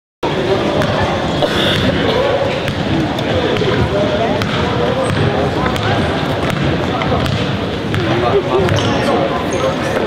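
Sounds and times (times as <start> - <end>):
basketball bouncing on hardwood floor: 3.6 - 8.9.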